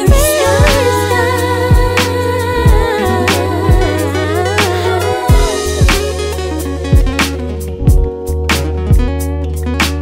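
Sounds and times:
r and b music with bass drum: 0:00.0 - 0:10.0.

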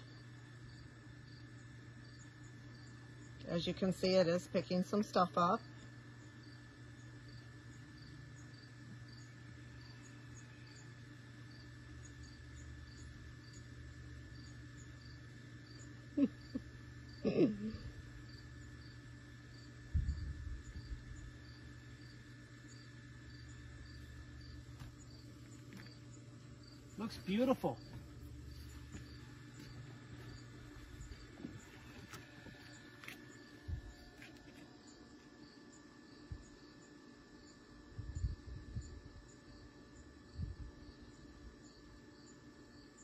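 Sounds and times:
faint low hum: 0:00.0 - 0:43.0
insects chirping: 0:00.0 - 0:43.0.

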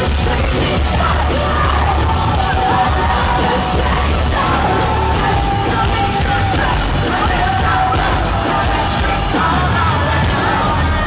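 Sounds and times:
live rock band playing loudly: 0:00.0 - 0:11.0.

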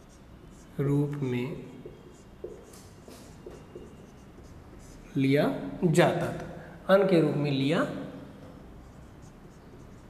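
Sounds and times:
marker scratching on whiteboard: 0:00.0 - 0:05.3, 0:08.5 - 0:10.0.

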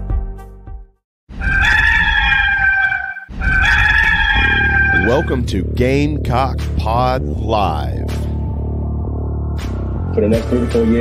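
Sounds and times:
rooster crowing: 0:01.4 - 0:05.2.

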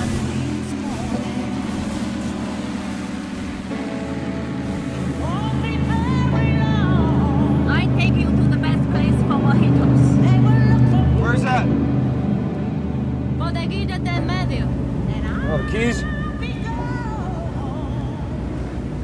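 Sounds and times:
song with sung vocal: 0:00.0 - 0:03.5, 0:04.8 - 0:11.8, 0:13.4 - 0:19.0
powerboat engine drone: 0:00.0 - 0:19.0.

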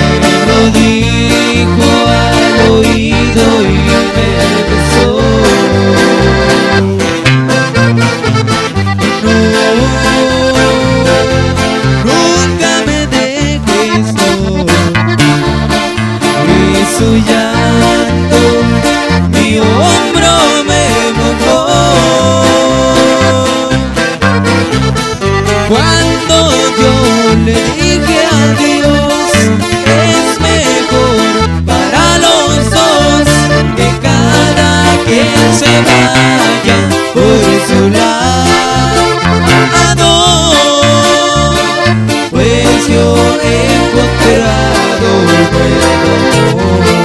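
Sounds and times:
acoustic guitar: 0:00.0 - 0:47.0
bass line: 0:00.0 - 0:47.0
button accordion melody: 0:00.0 - 0:47.0.

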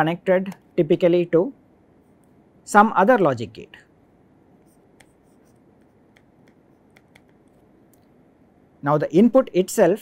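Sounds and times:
stylus ticking on tablet screen: 0:05.8 - 0:08.0.

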